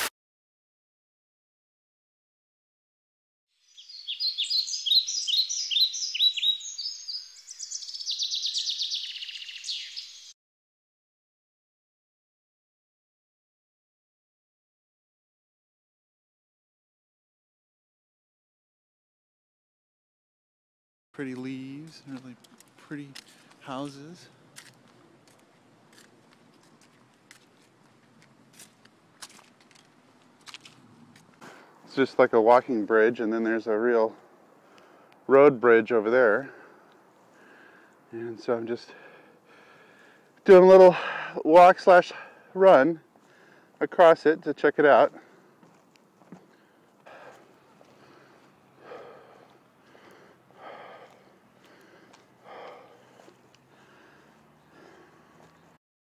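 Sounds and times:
person breathing hard: 0:36.5 - 0:38.1, 0:38.9 - 0:41.4, 0:43.2 - 0:43.8, 0:46.4 - 0:55.5.

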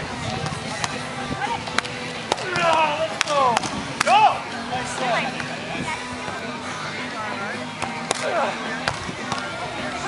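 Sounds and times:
players shouting: 0:02.3 - 0:04.6
hands smacking volleyball: 0:07.8 - 0:09.5.

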